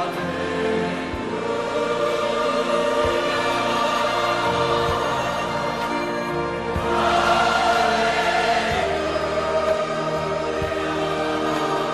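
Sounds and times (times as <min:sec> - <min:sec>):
choir singing sustained chords: 0:00.0 - 0:11.9.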